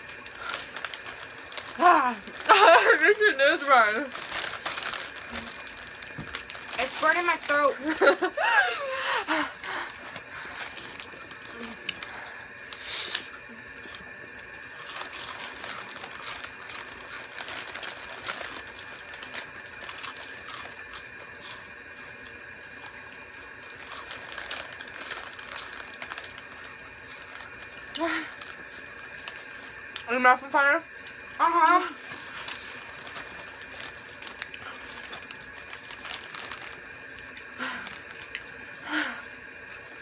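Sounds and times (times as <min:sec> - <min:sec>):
crunchy snack chewing: 0:00.0 - 0:03.0, 0:04.0 - 0:08.2, 0:09.5 - 0:30.1, 0:32.0 - 0:38.6
low background hum: 0:00.0 - 0:40.0.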